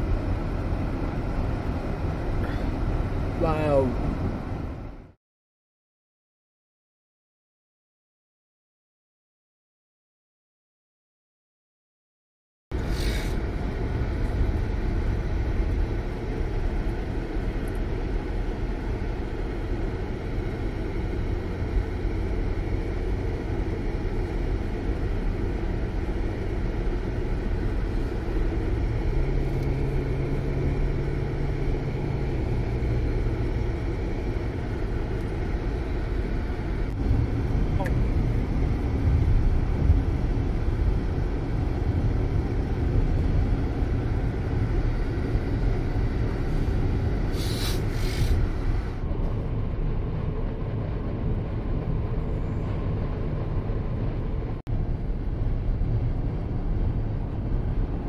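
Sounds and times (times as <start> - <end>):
car road noise rumble: 0.0 - 5.2, 12.7 - 58.0
low steady hum: 12.8 - 58.0.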